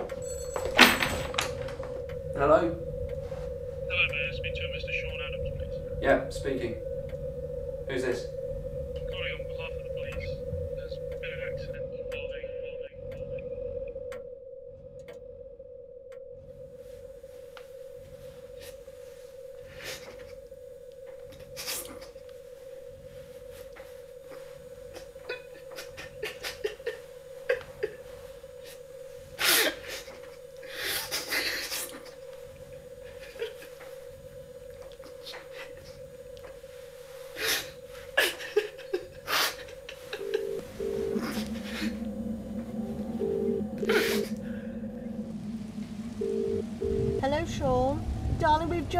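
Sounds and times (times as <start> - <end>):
steady held tone: 0.0 - 48.9
steady low hum: 0.0 - 48.9
telephone ringing tone: 40.2 - 42.3, 46.2 - 47.2.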